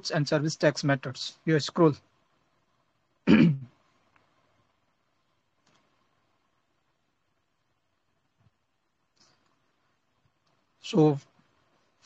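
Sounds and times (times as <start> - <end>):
man clearing his throat: 3.2 - 3.7.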